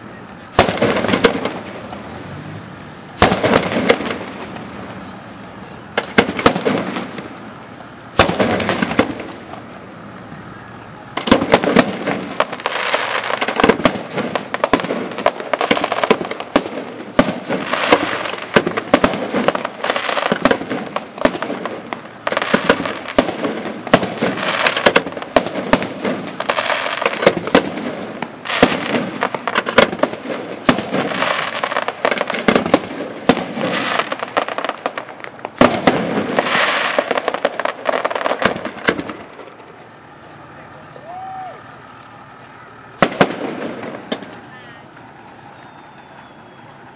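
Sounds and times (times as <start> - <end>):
fireworks bursting: 0.0 - 46.9.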